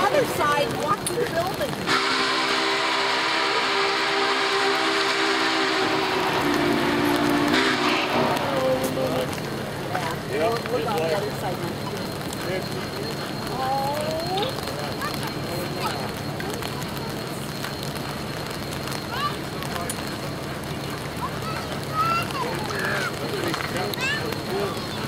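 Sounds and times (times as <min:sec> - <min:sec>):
approaching locomotive rumble: 0:00.0 - 0:25.0
steam hissing: 0:01.8 - 0:09.9.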